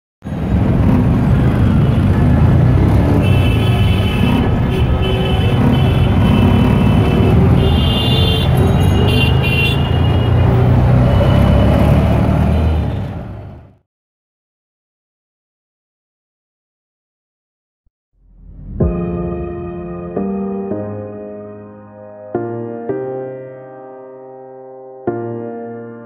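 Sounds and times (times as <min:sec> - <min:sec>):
traffic rumble: 0:00.2 - 0:13.8
car horns: 0:00.8 - 0:13.7.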